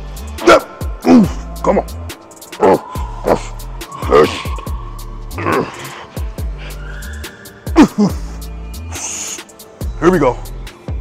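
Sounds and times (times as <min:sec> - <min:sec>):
hip-hop music with steady beat: 0:00.0 - 0:11.0
strained vocal groan: 0:05.3 - 0:06.3
sharp hissing breath: 0:05.7 - 0:07.6, 0:08.2 - 0:09.8.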